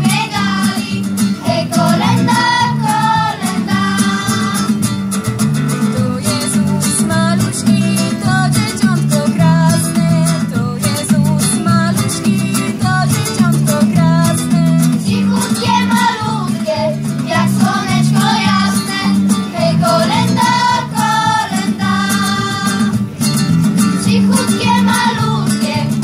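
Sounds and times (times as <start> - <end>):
youth choir singing: 0.0 - 4.8, 15.0 - 23.0, 24.0 - 26.0
guitar accompaniment: 0.0 - 26.0.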